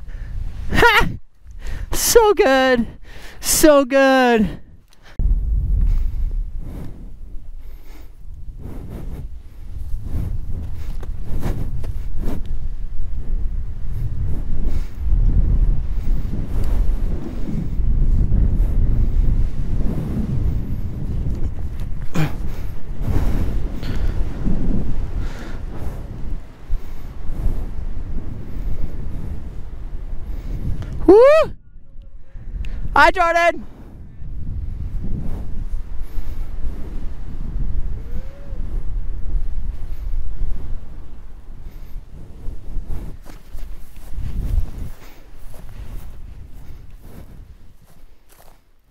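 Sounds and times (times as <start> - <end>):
wind rushing over microphone: 0.0 - 48.9.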